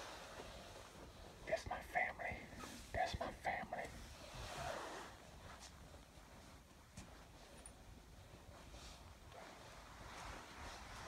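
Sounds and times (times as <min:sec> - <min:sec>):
person whispering: 0:01.4 - 0:04.2.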